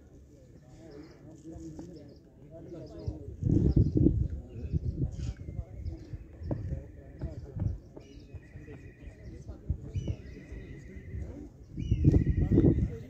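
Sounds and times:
faint voices: 0:00.0 - 0:13.0.

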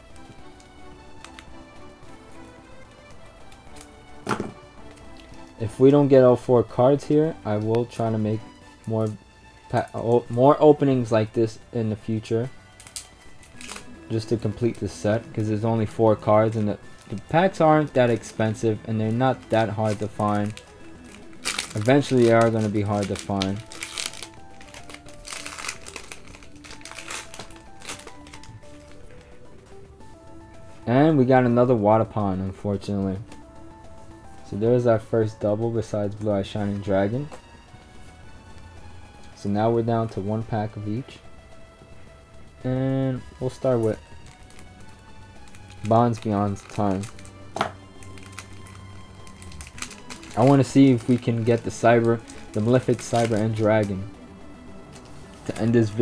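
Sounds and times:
quiet background music: 0:00.0 - 0:56.0
foil pack crinkling: 0:12.7 - 0:29.4, 0:43.4 - 0:54.1, 0:54.9 - 0:56.0.

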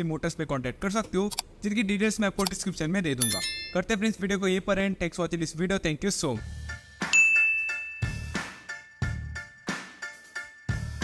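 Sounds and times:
high-pitched ding: 0:03.2 - 0:03.9, 0:07.2 - 0:08.7
background music with steady beat: 0:06.3 - 0:11.0.

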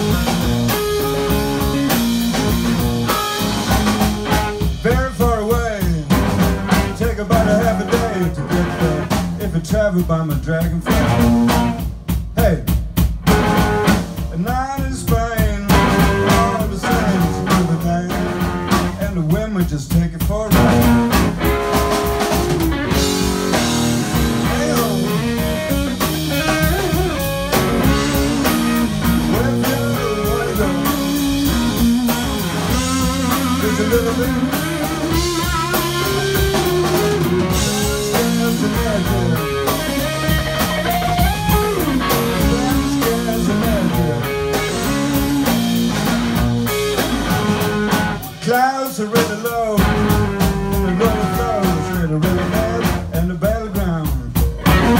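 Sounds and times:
electric guitar lead: 0:00.0 - 0:09.8, 0:10.4 - 0:12.0, 0:13.0 - 0:19.1, 0:20.5 - 0:53.1, 0:54.4 - 0:54.9
bass guitar: 0:00.0 - 0:54.9
drum kit: 0:00.0 - 0:54.9.

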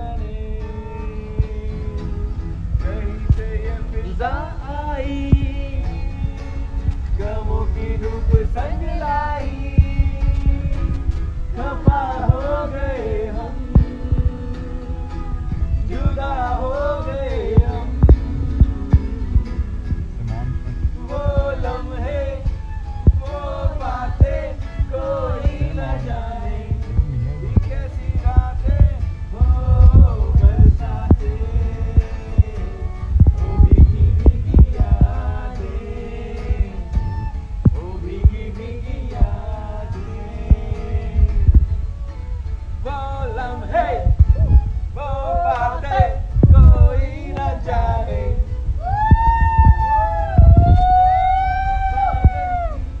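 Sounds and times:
heavy low thumping: 0:00.0 - 0:51.2
acoustic guitar: 0:00.0 - 0:53.0
long held sung notes: 0:00.0 - 0:53.0
low rumbling: 0:00.0 - 0:53.0
violin melody: 0:00.0 - 0:53.0.

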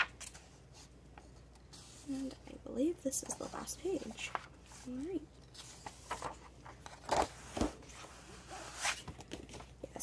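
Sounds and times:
paper pages rustling and sliding: 0:03.2 - 0:09.8.

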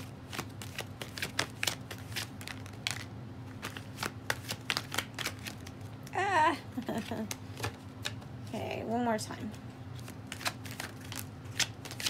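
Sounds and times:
cards being shuffled by hand: 0:00.0 - 0:06.2, 0:06.8 - 0:08.6, 0:09.4 - 0:12.0.

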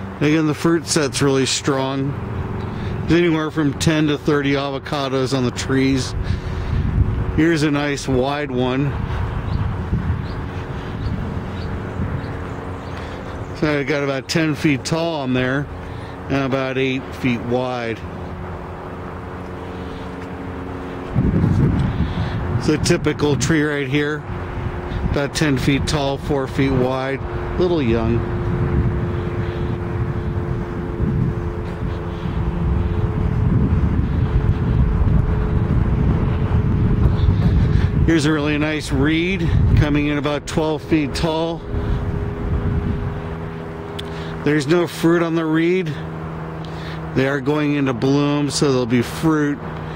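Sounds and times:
low mechanical hum: 0:00.0 - 0:49.9
rough low rumble: 0:02.0 - 0:44.6.

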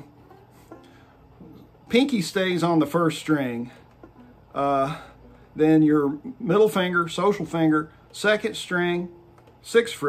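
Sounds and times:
faint banjo notes ringing: 0:00.0 - 0:10.0.

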